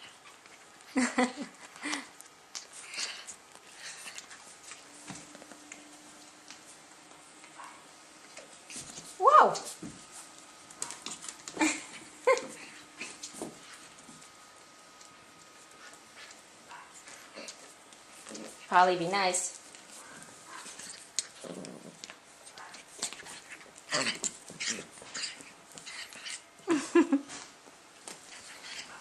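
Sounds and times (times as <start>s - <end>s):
woman laughing: 0.9s - 2.1s, 11.5s - 12.8s, 26.6s - 27.5s.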